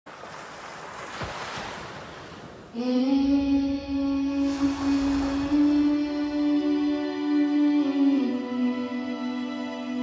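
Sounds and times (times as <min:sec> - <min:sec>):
wind-like whoosh: 0:03.2 - 0:07.6.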